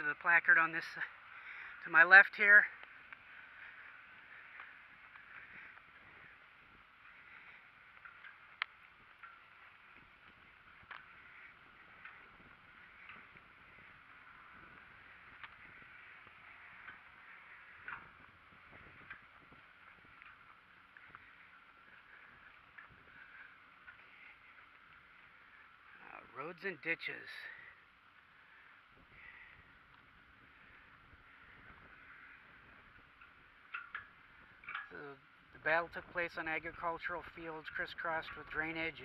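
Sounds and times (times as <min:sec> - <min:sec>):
faint outdoor hiss: 0:00.0 - 0:39.0
soft ticks: 0:02.8 - 0:03.3, 0:07.0 - 0:25.7, 0:31.5 - 0:35.0.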